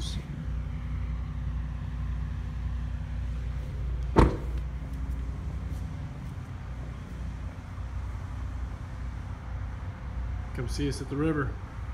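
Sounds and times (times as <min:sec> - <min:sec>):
steady low hum: 0:00.0 - 0:11.9
truck door slamming: 0:04.1 - 0:04.8.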